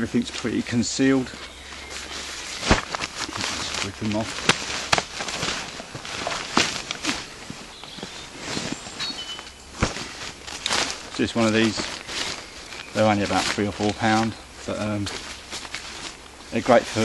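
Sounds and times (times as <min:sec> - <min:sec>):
backpack rain cover rustling: 0:00.0 - 0:17.0.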